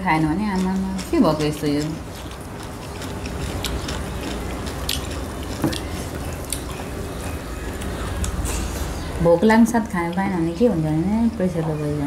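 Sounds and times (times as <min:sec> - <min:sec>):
chewing and wet mouth noises: 0:00.0 - 0:11.1
low steady hum: 0:00.0 - 0:12.0.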